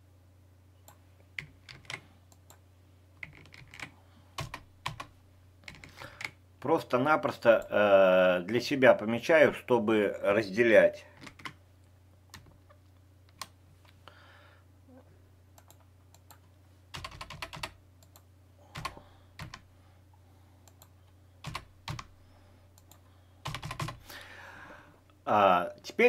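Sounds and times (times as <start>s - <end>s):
faint low hum: 0.0s - 26.0s
keyboard typing: 0.9s - 2.6s, 3.2s - 6.4s, 11.2s - 11.6s, 15.6s - 19.7s, 20.6s - 22.1s, 22.8s - 24.0s.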